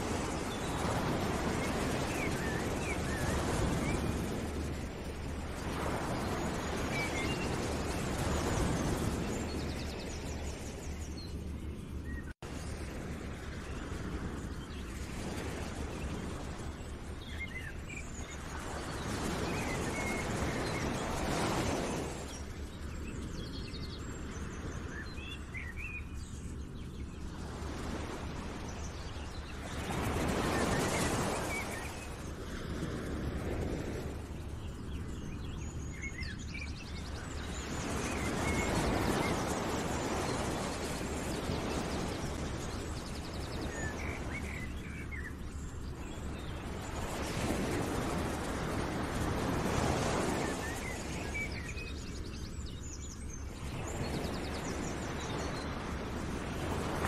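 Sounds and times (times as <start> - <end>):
small birds chirping: 34.2 - 57.0.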